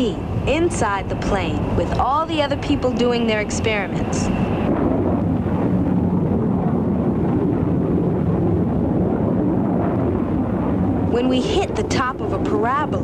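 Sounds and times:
faint drone: 0.0 - 13.0
jet engine rumble: 0.0 - 13.0.

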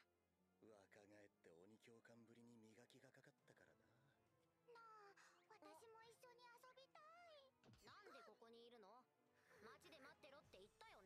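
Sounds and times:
high-pitched girl's voice speaking: 4.7 - 11.0.

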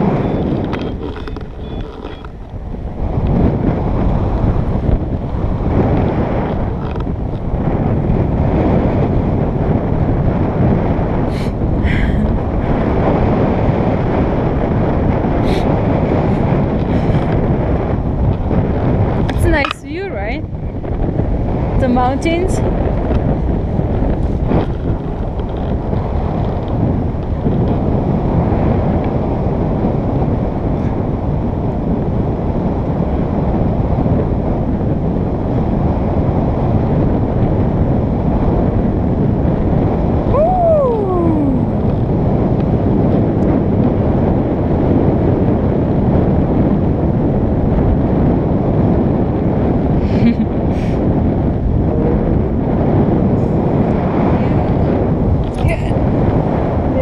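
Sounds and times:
wind rush on microphone: 0.0 - 57.0.

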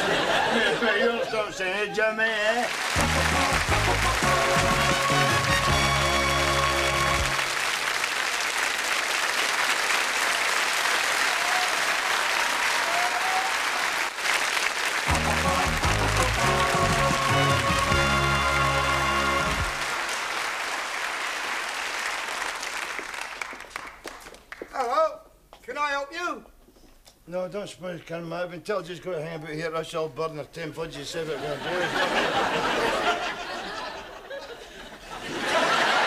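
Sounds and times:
studio audience applauding: 2.4 - 24.9
theme music: 2.9 - 7.6, 15.1 - 20.1.

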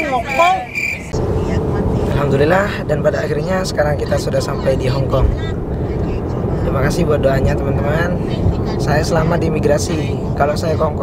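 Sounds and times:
man talking: 0.0 - 0.8, 2.0 - 5.5, 6.6 - 11.0
van road and engine rumble: 1.1 - 11.0.

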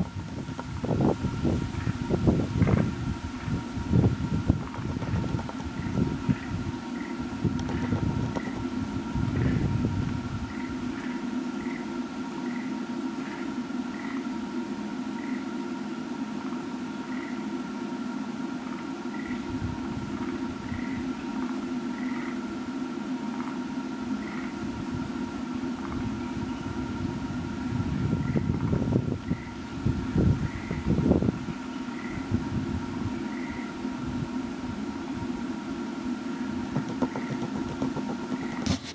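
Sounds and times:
wind rumbling on microphone: 0.0 - 14.2, 18.7 - 22.7, 23.4 - 38.9
steady low hum: 0.0 - 38.9.

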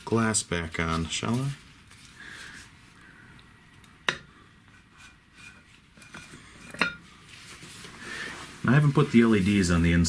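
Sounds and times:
soft handling noise: 0.0 - 3.0, 4.7 - 10.0.

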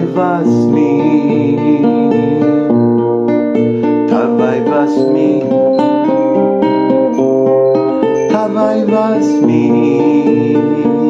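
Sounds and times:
man singing slow devotional song: 0.0 - 2.8, 4.0 - 5.7, 8.3 - 11.0
acoustic guitar: 0.0 - 11.0.

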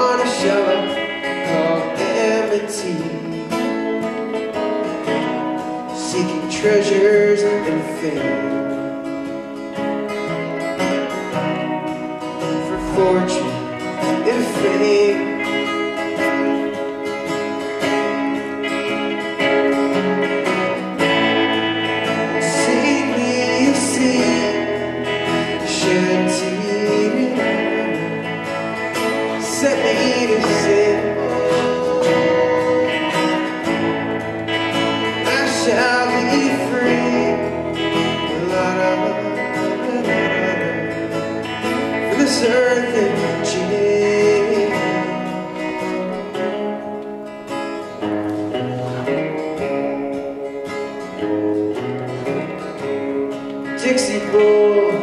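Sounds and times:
man singing: 0.0 - 9.2, 12.3 - 19.7, 20.6 - 46.6, 52.9 - 55.0
acoustic guitar strumming: 0.0 - 55.0.

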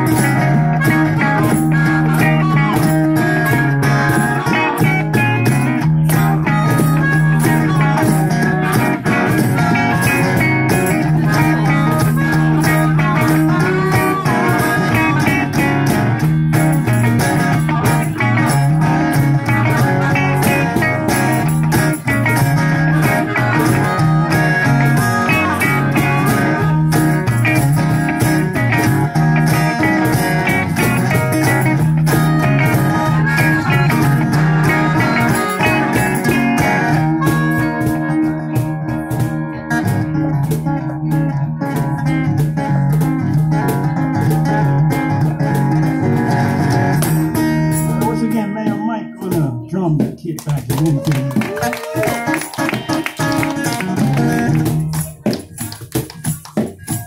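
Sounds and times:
harmonica: 0.0 - 38.7
electric guitar: 0.0 - 49.8, 50.4 - 57.0
strummed acoustic guitar: 0.0 - 57.0.

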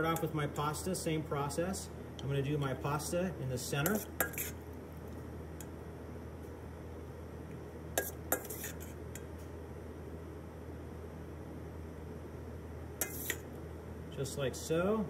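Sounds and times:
steady low hum: 0.0 - 15.0
metal spoon scraping steel bowl: 3.8 - 4.6, 8.0 - 9.0, 13.0 - 13.5.

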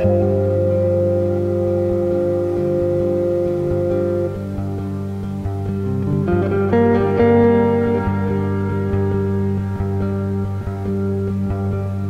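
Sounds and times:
droning electric guitar chord: 0.0 - 12.0.

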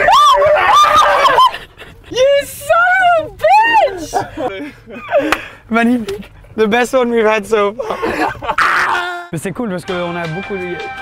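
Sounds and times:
woman screaming: 0.0 - 1.5, 2.2 - 4.2, 8.6 - 9.3.

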